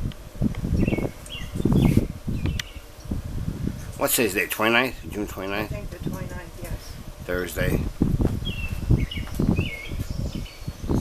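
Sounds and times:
wind buffeting microphone: 0:00.0 - 0:11.0
bird chirping: 0:00.7 - 0:03.2, 0:08.4 - 0:11.0.

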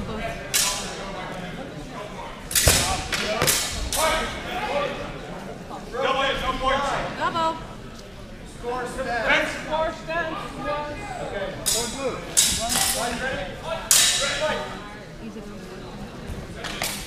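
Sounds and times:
indistinct voices echoing in a hall: 0:00.0 - 0:17.0.

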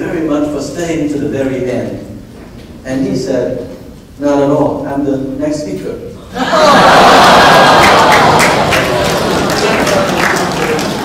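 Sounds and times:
audience laughing: 0:06.2 - 0:11.0
audience applauding: 0:06.5 - 0:11.0.

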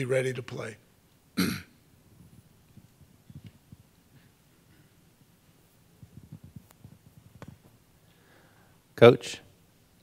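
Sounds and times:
man clearing his throat: 0:01.4 - 0:01.8.

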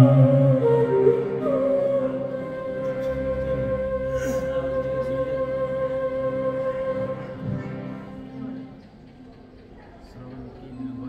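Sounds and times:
harmonium and keyboard chord: 0:00.0 - 0:08.8.

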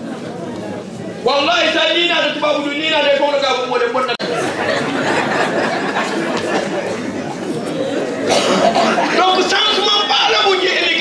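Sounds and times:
murmur of audience chatting: 0:00.0 - 0:11.0
person coughing: 0:08.2 - 0:09.3.

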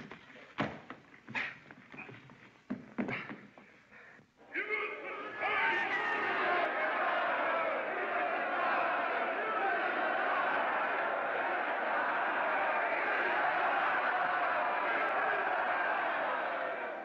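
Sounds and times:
crowd of men shouting and cheering: 0:04.5 - 0:17.0.

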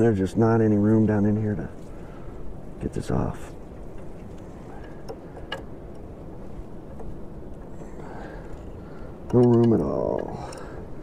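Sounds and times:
metal on metal clicks: 0:09.3 - 0:10.7.

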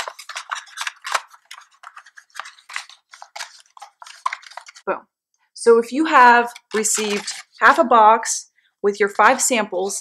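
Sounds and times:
packages clicking and rustling in box: 0:00.0 - 0:04.8, 0:06.5 - 0:07.6.

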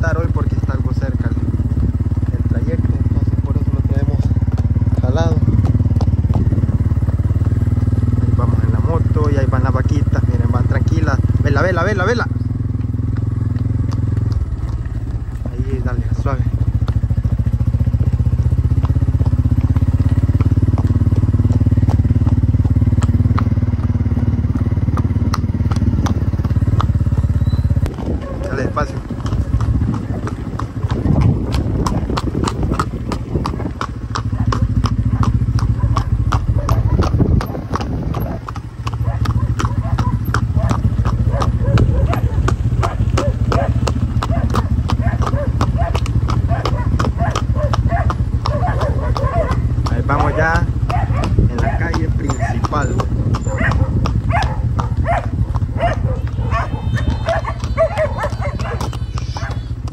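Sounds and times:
hooves clopping on road: 0:00.0 - 0:59.9
small motorcycle engine running: 0:00.0 - 0:59.9.

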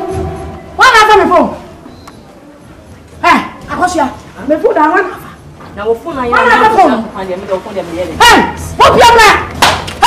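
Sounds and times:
woman speaking loudly: 0:00.8 - 0:01.6, 0:06.0 - 0:09.5.

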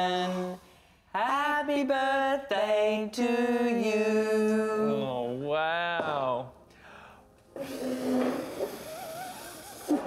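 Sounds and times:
person blowing out candles: 0:07.6 - 0:10.0.

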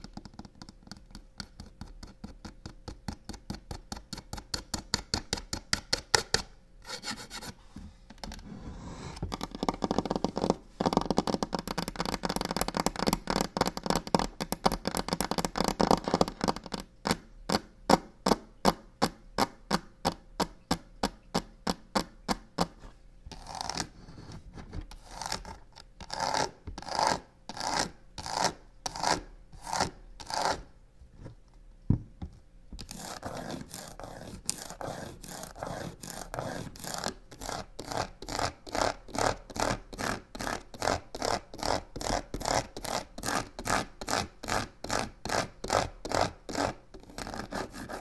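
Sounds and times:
fingernails scratching on a box: 0:32.8 - 0:48.0.

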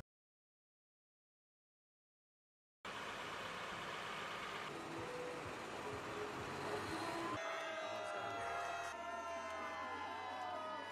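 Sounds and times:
crowd calling and cheering: 0:04.8 - 0:10.9.

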